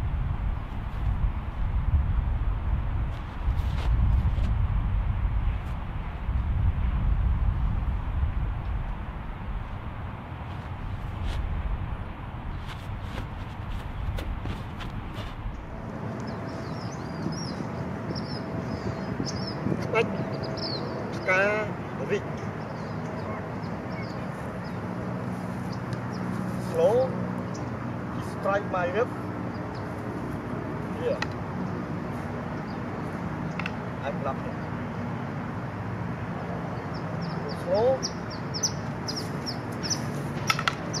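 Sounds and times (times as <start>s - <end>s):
wind rumbling on microphone: 0.0s - 37.4s
low outdoor background hum: 0.0s - 41.0s
birds chirping: 12.5s - 41.0s
wooden sticks clacking: 40.4s - 40.9s.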